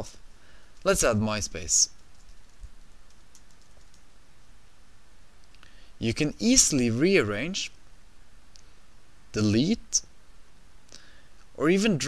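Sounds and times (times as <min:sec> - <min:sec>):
low steady background hum: 0:00.0 - 0:12.0
faint keyboard keystrokes: 0:01.9 - 0:04.1.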